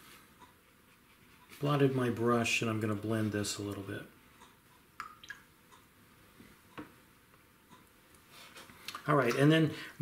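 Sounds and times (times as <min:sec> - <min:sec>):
faint clicks and taps: 0:03.6 - 0:09.5.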